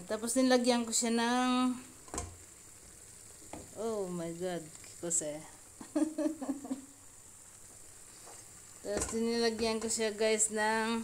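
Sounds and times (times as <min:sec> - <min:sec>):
chicken sizzling in a pan: 0:00.0 - 0:11.0.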